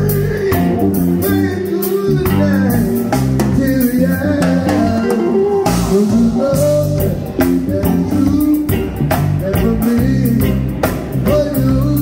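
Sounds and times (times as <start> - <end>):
bass guitar: 0.0 - 12.0
drum kit: 0.0 - 12.0.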